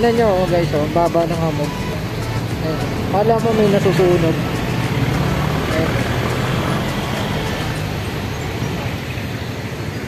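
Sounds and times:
vehicles driving past: 0.0 - 10.0.

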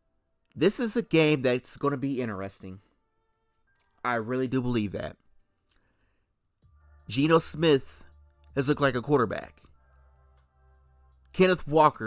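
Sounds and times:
man speaking: 0.6 - 2.9, 4.0 - 5.3, 7.1 - 9.7, 11.3 - 12.0.

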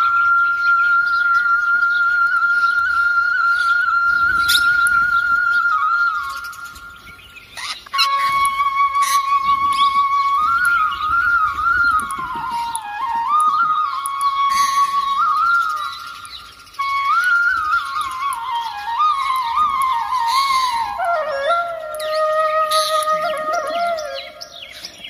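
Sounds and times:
flute playing slow music: 0.0 - 25.0.

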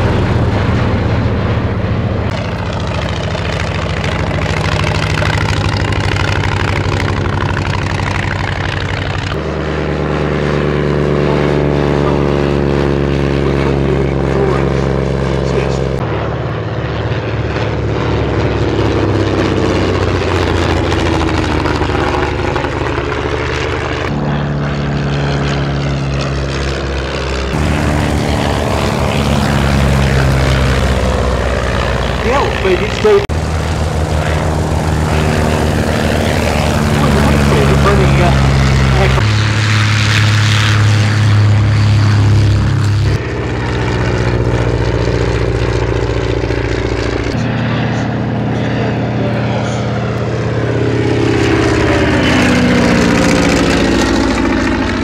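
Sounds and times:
propeller plane engines droning: 0.0 - 55.0.

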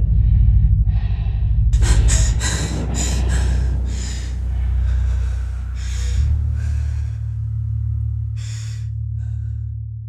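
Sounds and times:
low steady drone: 0.0 - 10.0
woman gasping for breath: 1.8 - 7.5.

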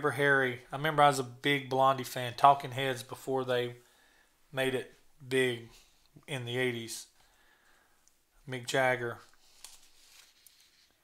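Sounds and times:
person speaking: 0.0 - 3.8, 4.5 - 7.2, 8.4 - 9.4
magazine page turning: 9.1 - 11.0.

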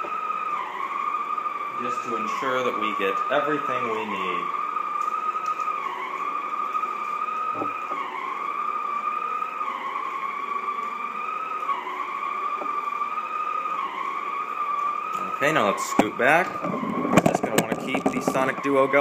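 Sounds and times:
floor cleaner whining: 0.0 - 19.0.

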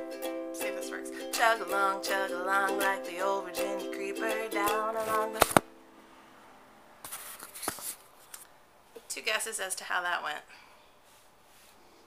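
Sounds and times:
sharp click: 5.4 - 5.7
camera handling rustle: 7.0 - 8.4.

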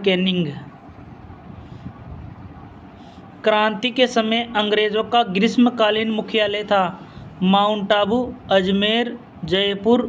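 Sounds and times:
low rumble with faint hiss: 0.0 - 10.0.

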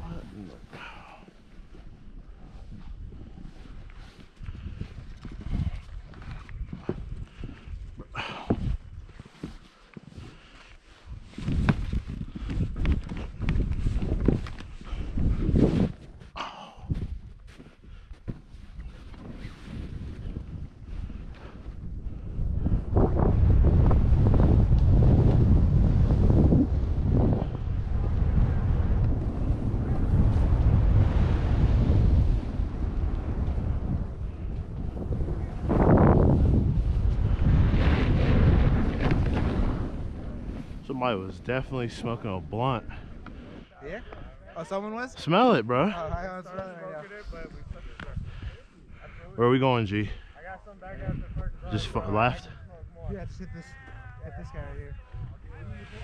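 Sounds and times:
wind buffeting microphone: 0.0 - 45.1, 47.2 - 56.0.

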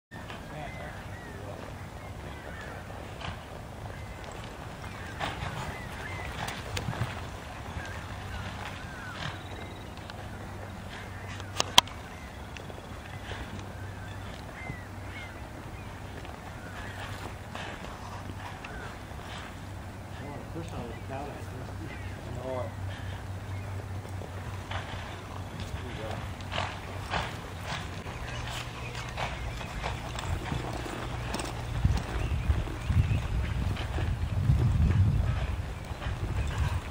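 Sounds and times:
hooves thudding in dirt: 0.1 - 36.9.

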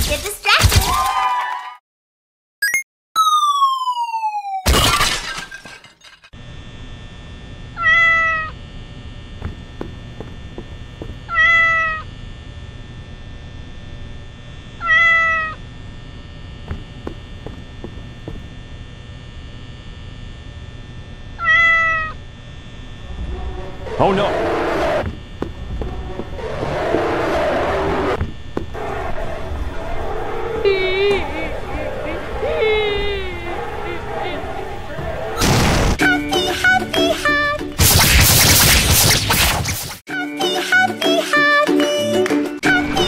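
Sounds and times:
cartoon falling whistle: 2.6 - 4.7
cat meowing: 7.8 - 8.5, 11.3 - 12.0, 14.8 - 15.6, 21.4 - 22.2
steady hum: 8.5 - 11.3, 15.5 - 40.0
loud crash: 35.4 - 36.0.

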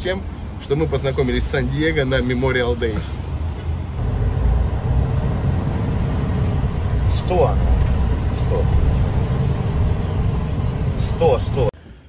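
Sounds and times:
truck road and engine rumble: 0.0 - 11.8.

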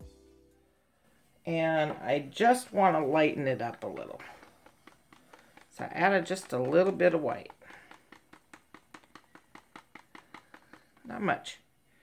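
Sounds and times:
stir stick knocking in plastic cup: 1.8 - 11.6.

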